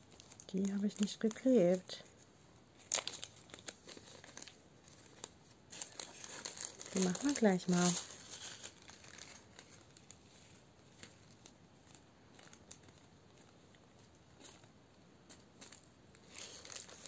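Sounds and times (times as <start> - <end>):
plastic bag crinkling: 0.0 - 14.7, 15.3 - 17.0.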